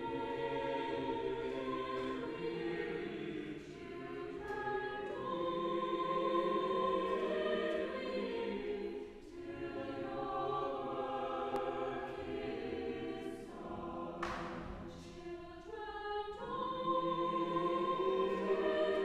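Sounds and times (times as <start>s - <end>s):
church choir singing a carol: 0.0s - 19.0s.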